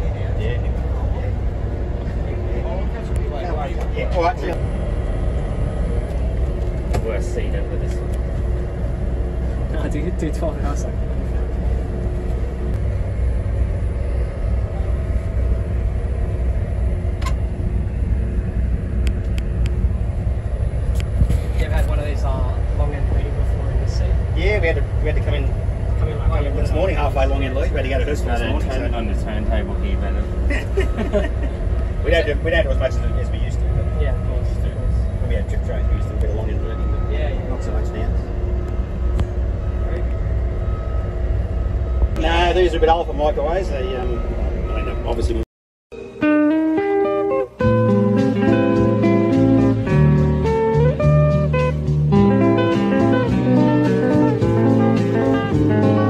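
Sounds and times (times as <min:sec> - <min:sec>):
train equipment hum and rumble: 0:00.0 - 0:45.4, 0:47.0 - 0:56.0
indistinct voices talking: 0:19.8 - 0:45.4.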